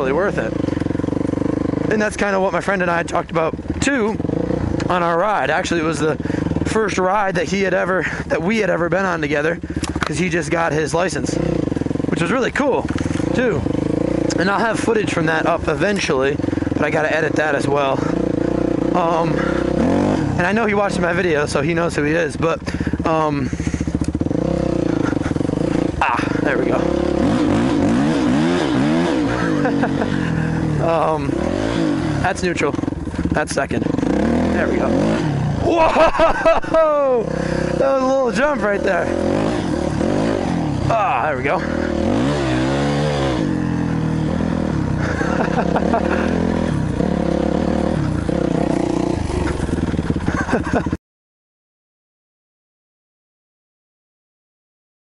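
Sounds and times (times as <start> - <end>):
dirt bike engine running: 0.0 - 51.0.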